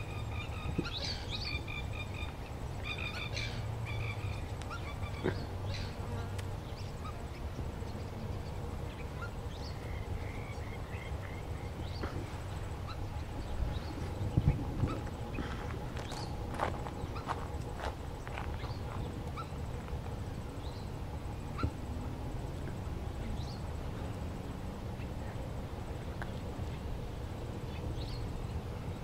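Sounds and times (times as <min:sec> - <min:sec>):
steady low rumble: 0:00.0 - 0:29.0.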